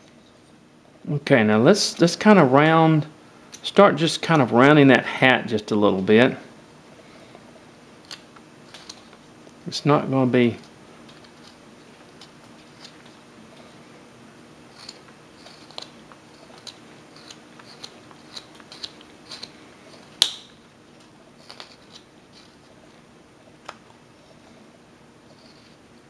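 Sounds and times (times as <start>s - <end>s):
knife carving wood: 11.2s - 13.2s, 14.7s - 20.1s, 21.4s - 22.7s, 25.3s - 26.0s.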